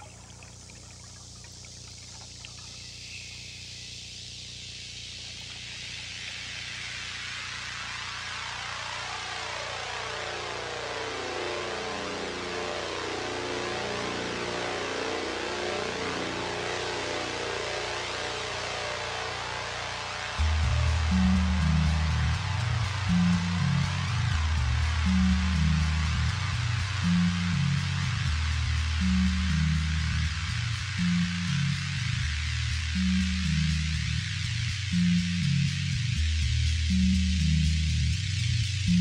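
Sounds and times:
ambient electronic music: 0.0 - 39.0.

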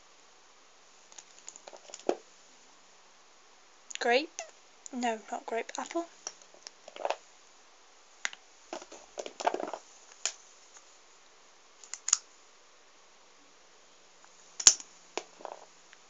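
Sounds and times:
erasers clicking and clattering: 1.1 - 2.2, 14.6 - 15.7.

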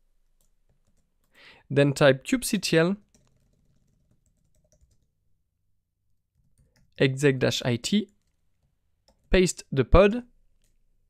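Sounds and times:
computer keyboard clicks: 3.1 - 5.1.

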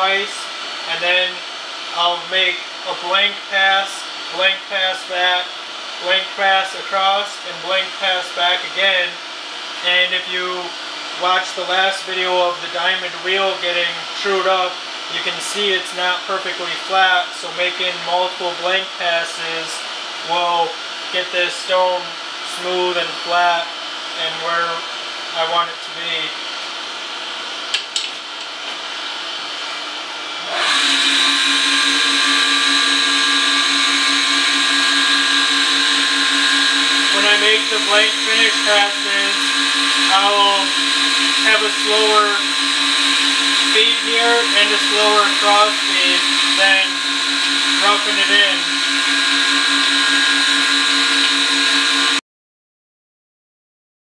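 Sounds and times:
surface grinder running: 30.2 - 52.2
grinding hiss with high whine: 30.9 - 52.2.

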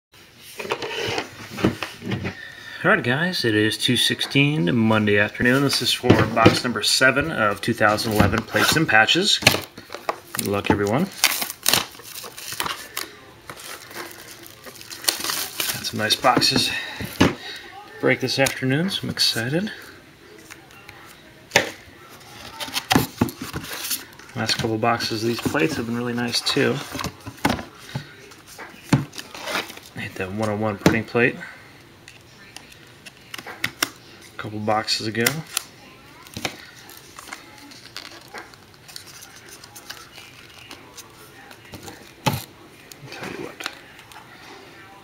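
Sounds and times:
cardboard and wrapping crinkling: 7.5 - 17.6, 22.1 - 30.7, 35.2 - 44.3.

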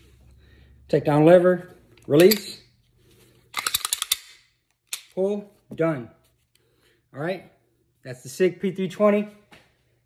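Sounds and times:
pistol slide metallic clicks: 3.5 - 5.2.

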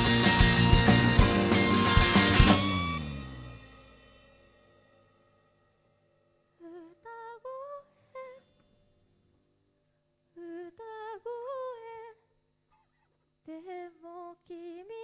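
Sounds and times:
girl singing unaccompanied: 6.6 - 8.4, 10.4 - 12.3, 13.4 - 15.0.

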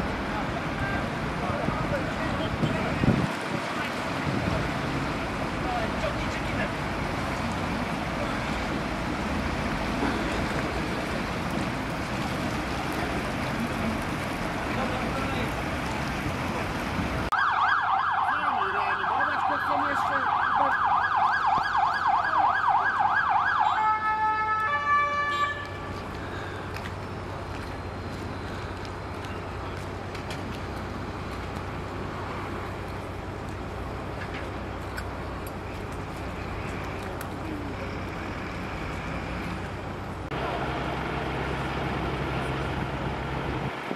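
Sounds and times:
emergency siren yelping: 17.3 - 25.7.

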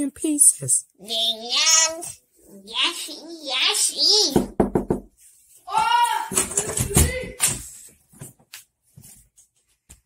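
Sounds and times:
child's high-pitched wordless cry: 1.0 - 4.5, 5.7 - 7.3.

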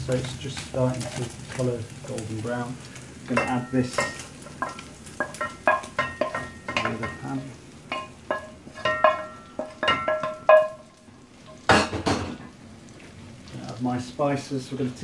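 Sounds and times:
wooden spoon knocking on frying pan: 3.3 - 10.9, 11.6 - 12.5.

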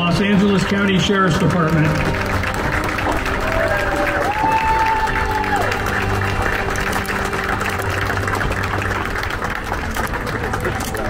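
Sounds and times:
audience applauding: 0.0 - 11.0
music playing: 0.0 - 11.0.

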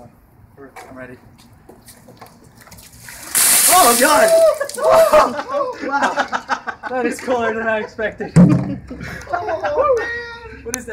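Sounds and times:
water sloshing in a bucket: 2.1 - 5.2.

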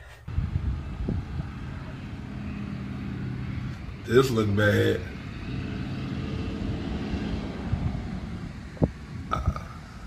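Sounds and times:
wind noise: 0.0 - 4.0, 5.0 - 10.0
propeller airplane engine: 0.3 - 9.4.

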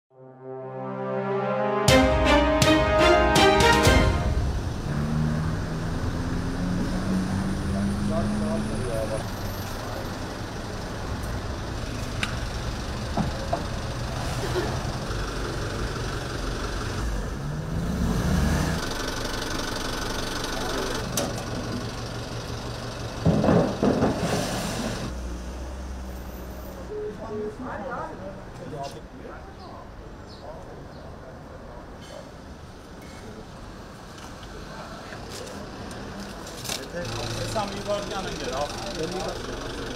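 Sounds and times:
traffic hum: 1.9 - 39.9
vehicle engine running: 4.4 - 23.9, 37.0 - 39.9
people talking: 7.8 - 9.4, 36.7 - 39.9.

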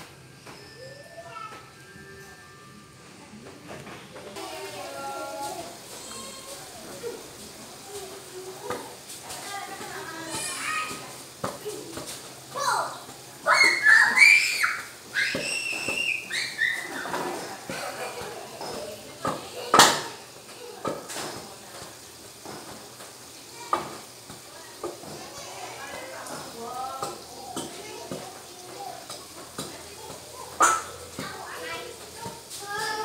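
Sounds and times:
children's voices: 0.0 - 33.0.

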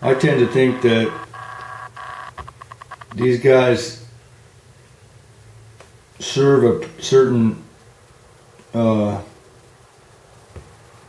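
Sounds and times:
electronic buzz: 0.0 - 3.4
short buzz pulses: 0.0 - 3.4
faint low hum: 0.0 - 4.6.

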